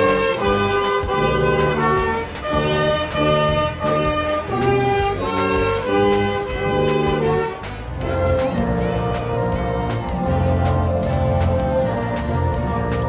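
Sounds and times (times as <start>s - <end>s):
brass band playing: 0.0s - 13.0s.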